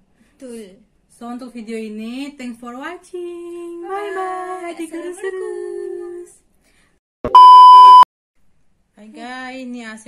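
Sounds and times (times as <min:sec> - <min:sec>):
loud high test tone beep: 0:07.3 - 0:08.1.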